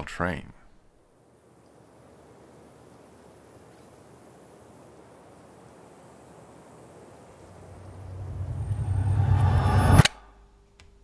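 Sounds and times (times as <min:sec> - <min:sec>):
faint steady hum: 0:00.0 - 0:11.0
riser whoosh: 0:07.7 - 0:10.3.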